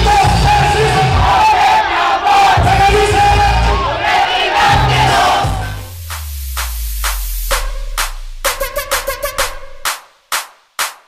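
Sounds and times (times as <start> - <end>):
crowd singing and shouting: 0.0 - 6.2
party music with heavy beat: 0.0 - 11.0
electronic track with deep bass: 4.6 - 10.9.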